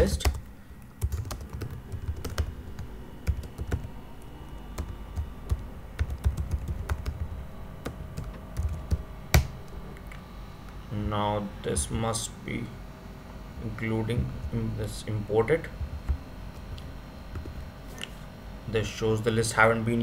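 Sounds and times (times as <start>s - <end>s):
keyboard typing: 0.0s - 9.6s.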